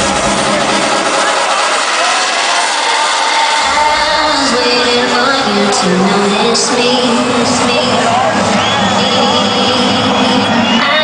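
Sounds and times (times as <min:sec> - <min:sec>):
sustained synth notes: 0:03.5 - 0:10.7.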